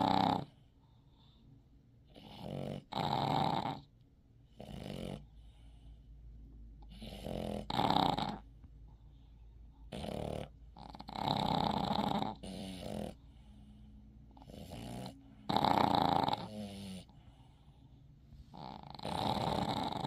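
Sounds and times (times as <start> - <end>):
dog snoring: 0.0 - 1.4, 2.0 - 3.9, 4.5 - 6.0, 6.8 - 8.5, 9.7 - 17.9, 18.5 - 20.0.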